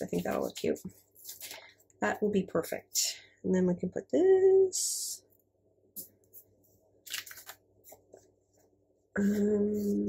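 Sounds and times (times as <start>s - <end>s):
paper sheets rustling: 0.0s - 1.8s, 6.3s - 8.7s.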